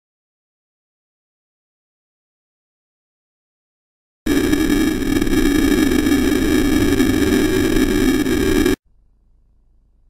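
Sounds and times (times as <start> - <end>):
electronic static buzzing hiss: 4.3 - 8.8
steady high electronic tones: 4.3 - 8.8.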